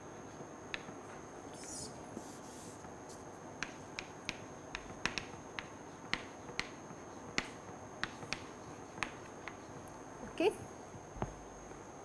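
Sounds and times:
chalk tapping on blackboard: 2.1s - 6.8s, 7.4s - 9.6s.

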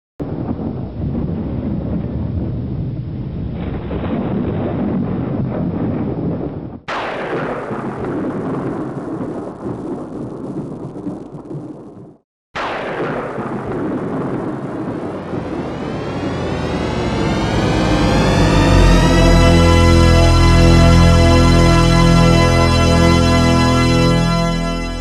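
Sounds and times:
thunder rumbling: 0.2s - 25.0s
thunderclap: 0.2s - 25.0s.

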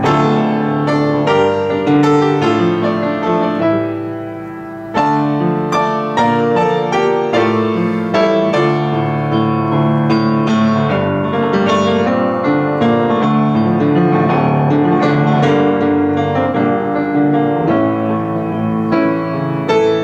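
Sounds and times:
upright piano playing: 0.0s - 20.0s.

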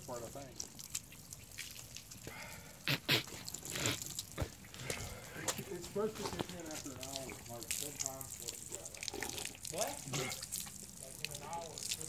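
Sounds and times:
person retching and spitting: 1.0s - 5.7s, 8.9s - 10.8s.

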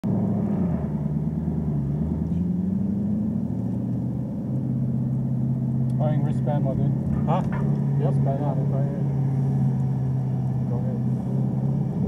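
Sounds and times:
car engine running at low revs: 0.0s - 12.0s.

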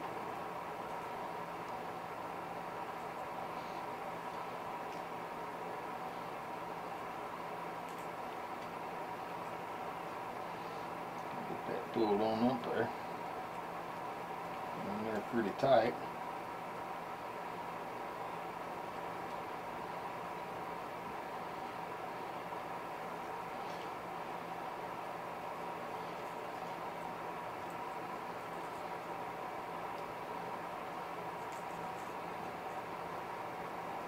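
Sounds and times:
steady mechanical hum: 0.0s - 34.0s.

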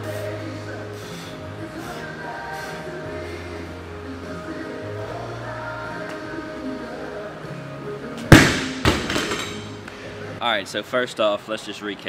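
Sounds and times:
background music: 0.0s - 10.8s
barbell dropped on rubber floor: 8.3s - 9.7s.

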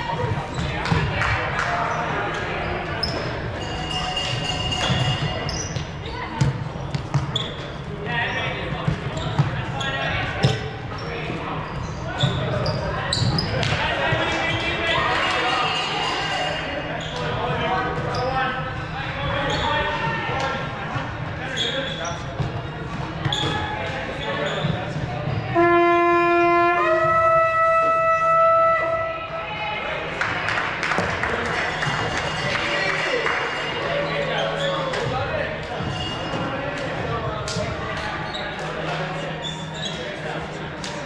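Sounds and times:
players shouting and chatting: 0.0s - 41.0s
sneakers squeaking on hardwood: 2.4s - 14.2s, 17.0s - 18.4s, 19.4s - 19.9s, 21.5s - 25.5s, 34.4s - 36.6s, 38.0s - 40.2s.

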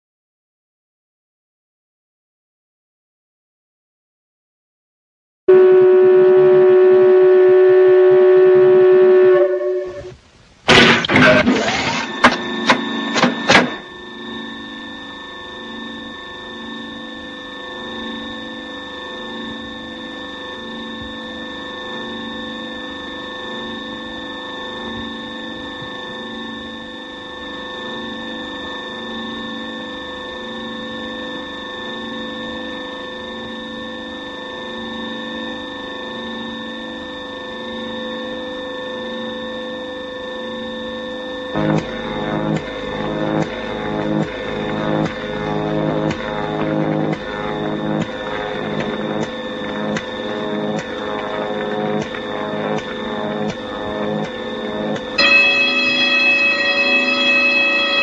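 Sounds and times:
factory machinery drone: 5.5s - 58.0s
sharp metallic clanks: 55.2s - 58.0s.

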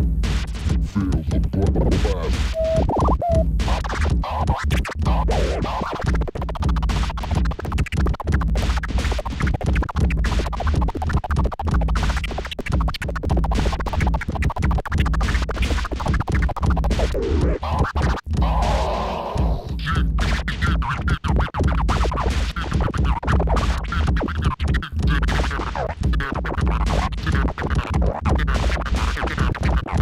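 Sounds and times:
steady bass: 0.0s - 30.0s
vinyl record scratching: 0.0s - 30.0s.

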